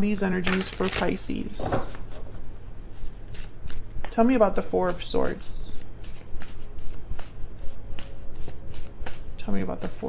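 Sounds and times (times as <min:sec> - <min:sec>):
cards being shuffled: 0:00.4 - 0:04.1, 0:04.9 - 0:10.0.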